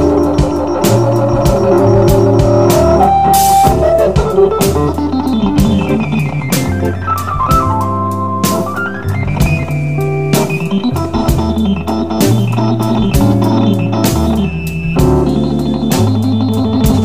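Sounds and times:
low moving bass line: 0.0 - 17.0
organ playing blues solo: 0.0 - 17.0.

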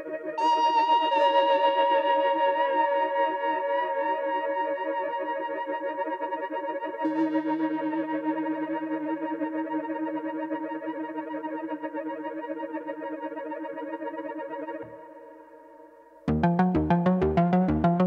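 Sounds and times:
synthesizer chord with reverb: 16.3 - 18.0.

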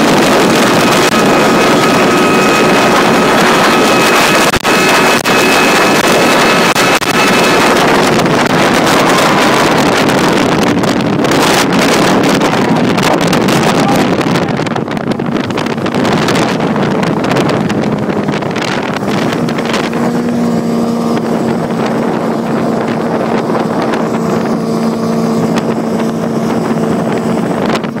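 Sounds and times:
rushing water: 0.0 - 28.0
speedboat engines: 0.0 - 28.0
wind on microphone: 0.0 - 28.0.

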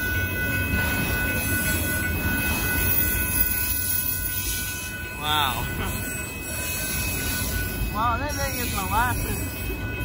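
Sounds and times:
train wheels rumbling on rail: 0.0 - 10.0.

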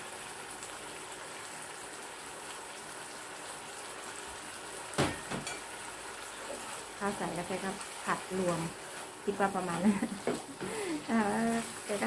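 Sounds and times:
pumpkin sizzling in frying oil: 0.0 - 12.0.

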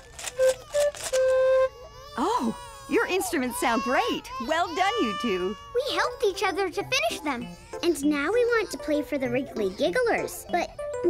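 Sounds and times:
cardboard tube shaker rattling: 0.0 - 1.6
pan flute notes: 0.2 - 2.3.

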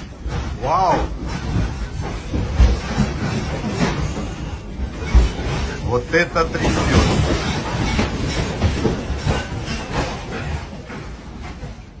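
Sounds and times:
building rattling and knocking: 0.0 - 12.0.

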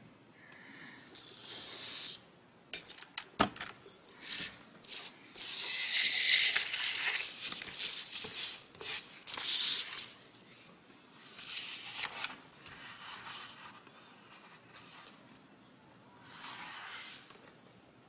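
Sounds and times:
paper rustling and sliding: 4.1 - 15.2, 16.2 - 17.6.

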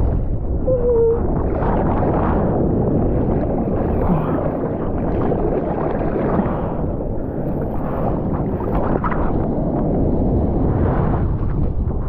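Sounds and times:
gurgling warble: 0.6 - 6.4.

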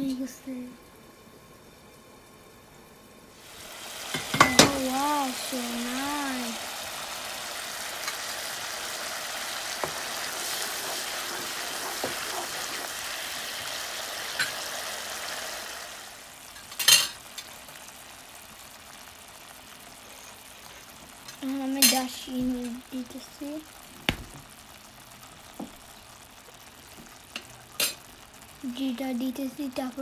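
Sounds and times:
gravy bubbling and sizzling in a pan: 0.0 - 30.0.

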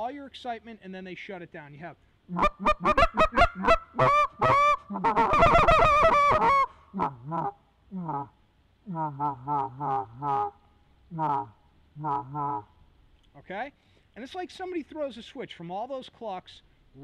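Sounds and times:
goose call high clucks: 2.3 - 12.7
goose call low murmur: 2.3 - 12.7.

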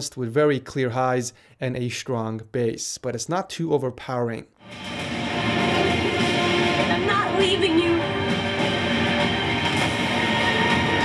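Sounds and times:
film soundtrack music: 4.6 - 11.0.

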